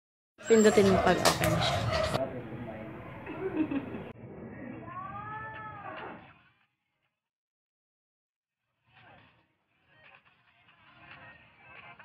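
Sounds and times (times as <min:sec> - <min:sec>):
people talking: 0:00.5 - 0:01.6.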